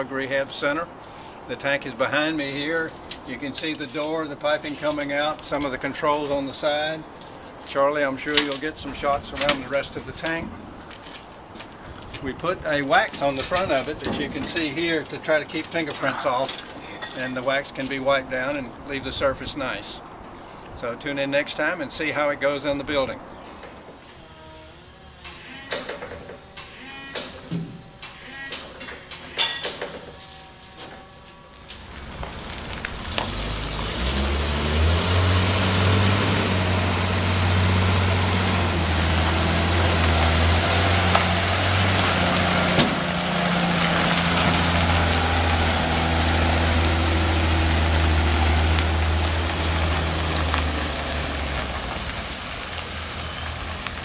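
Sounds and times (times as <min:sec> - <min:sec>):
truck engine running: 0:31.4 - 0:54.0.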